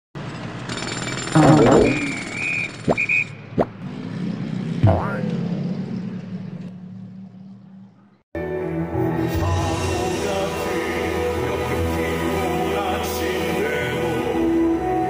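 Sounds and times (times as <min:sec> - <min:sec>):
brief high tone: 0:01.4 - 0:02.4.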